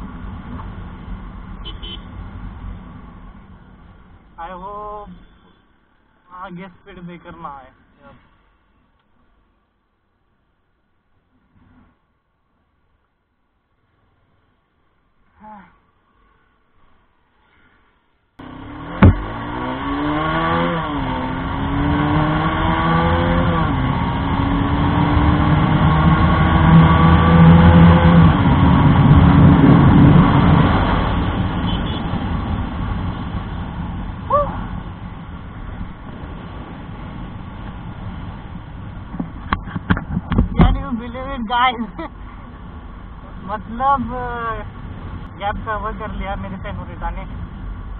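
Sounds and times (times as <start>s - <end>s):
motorcycle engine accelerating: 18.4s - 33.6s
wind noise on microphone: 24.4s - 40.8s.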